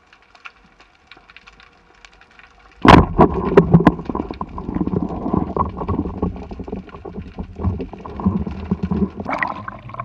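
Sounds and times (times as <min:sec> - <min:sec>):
underwater rush of water: 0:02.8 - 0:10.0.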